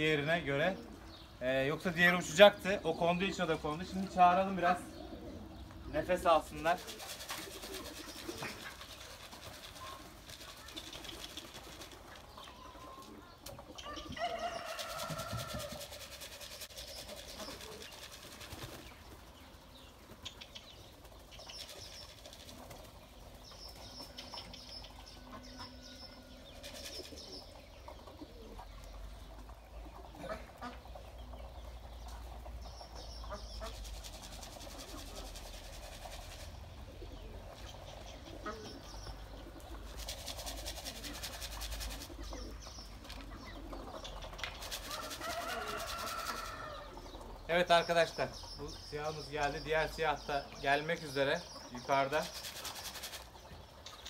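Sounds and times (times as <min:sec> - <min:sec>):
bird calls and chirps: 0:00.0 - 0:54.0
pigeon wings flapping: 0:06.7 - 0:12.3, 0:14.7 - 0:19.2, 0:33.6 - 0:36.6, 0:39.8 - 0:42.5, 0:44.0 - 0:46.5, 0:52.2 - 0:53.3.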